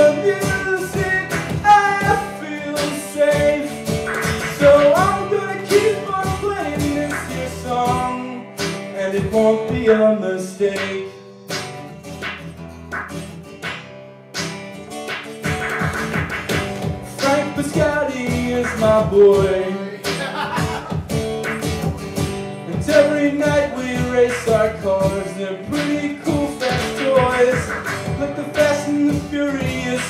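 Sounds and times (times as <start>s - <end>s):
person singing: 0.0s - 3.8s, 4.4s - 11.1s, 17.1s - 21.0s, 22.6s - 30.0s
electronic hand percussion beats: 0.0s - 9.9s, 10.8s - 30.0s
acoustic guitar strumming: 0.0s - 30.0s
electronic hand drum hits: 15.1s - 17.1s.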